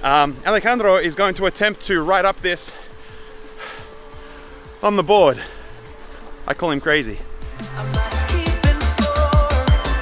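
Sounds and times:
man speaking: 0.0s - 2.8s, 4.8s - 5.6s, 6.4s - 7.4s
faint breath: 2.7s - 4.8s, 5.4s - 6.4s.

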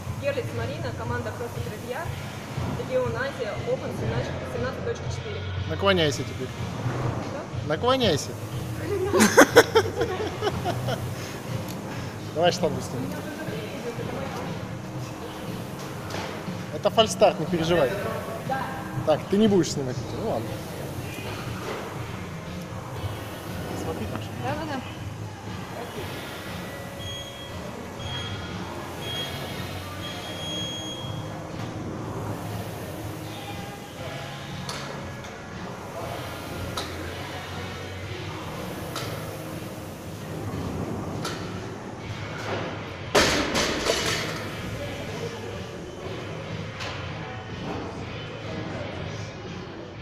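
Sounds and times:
gym chatter: 0.0s - 50.0s
music: 0.0s - 50.0s.

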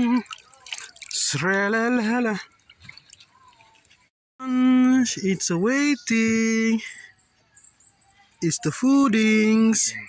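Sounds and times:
liquid dripping and splashing: 0.0s - 4.1s.

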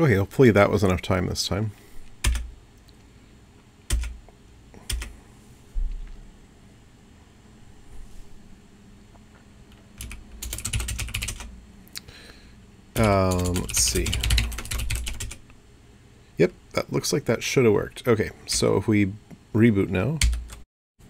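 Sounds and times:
computer keyboard typing: 2.2s - 2.5s, 3.9s - 4.2s, 4.9s - 5.1s, 9.7s - 11.5s, 13.0s - 15.4s, 20.2s - 20.6s.

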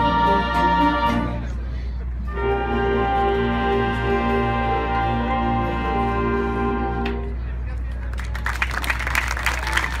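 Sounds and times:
audience clapping: 7.8s - 10.0s.

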